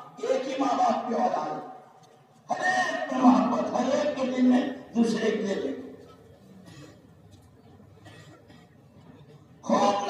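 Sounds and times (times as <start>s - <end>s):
man speaking in drawn-out phrases: 0.0s - 1.8s, 2.5s - 6.0s, 9.6s - 10.0s.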